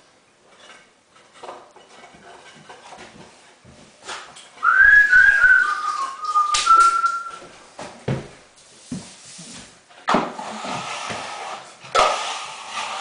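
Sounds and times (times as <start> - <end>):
plastering tools clinking and scraping: 0.4 - 13.0
person whistling: 4.6 - 7.5.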